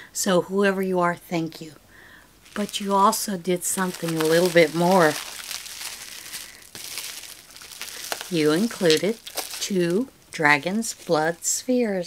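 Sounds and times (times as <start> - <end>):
packaging crinkling: 2.4 - 11.7.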